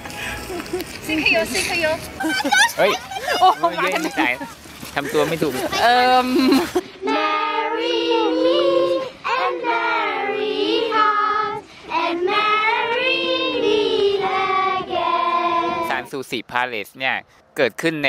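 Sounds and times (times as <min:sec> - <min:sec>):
children singing in unison: 0:07.0 - 0:16.0.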